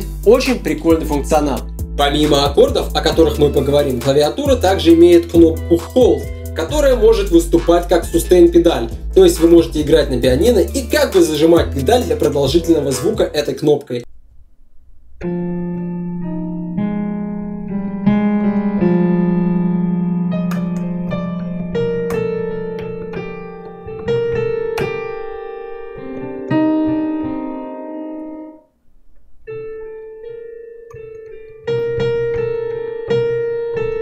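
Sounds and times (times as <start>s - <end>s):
piano chords: 0.0s - 34.0s.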